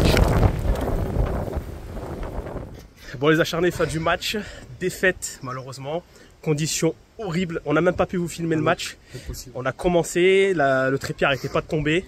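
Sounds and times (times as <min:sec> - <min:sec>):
wind buffeting microphone: 0:00.0 - 0:03.0.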